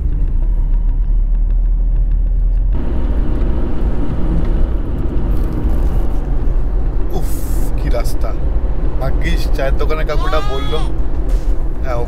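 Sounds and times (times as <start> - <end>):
car cabin engine and road rumble: 0.0 - 12.0.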